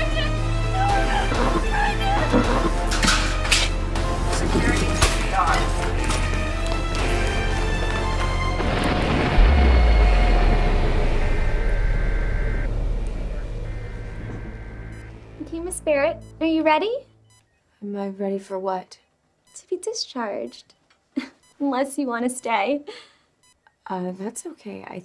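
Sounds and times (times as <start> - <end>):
tense horror music: 0.0 - 16.6
deep boom: 8.5 - 15.4
sharp hits: 8.5 - 15.4.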